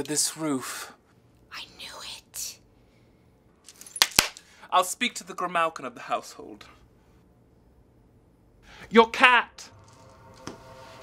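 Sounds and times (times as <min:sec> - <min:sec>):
person whispering: 0:01.5 - 0:02.6.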